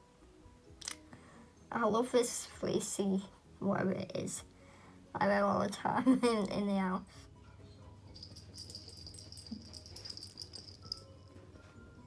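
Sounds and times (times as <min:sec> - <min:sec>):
faint music: 0:00.0 - 0:12.0
small bell jingling: 0:08.1 - 0:11.4.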